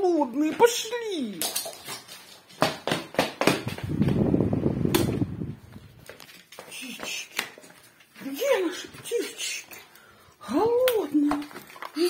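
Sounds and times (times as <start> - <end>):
fan blowing on microphone: 3.6 - 6.0
fan switch click: 4.9 - 5.3.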